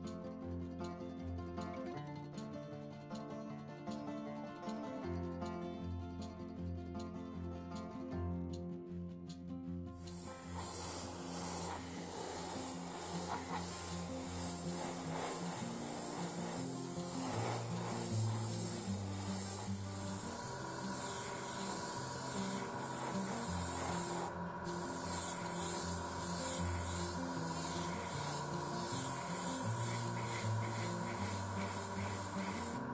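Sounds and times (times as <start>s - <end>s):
background music: 0.1s - 32.9s
airbrush spraying hiss: 10.0s - 32.9s.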